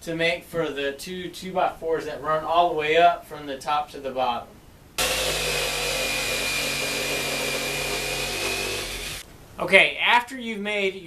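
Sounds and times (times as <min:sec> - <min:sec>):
electric jigsaw cutting wood: 0:05.0 - 0:09.2.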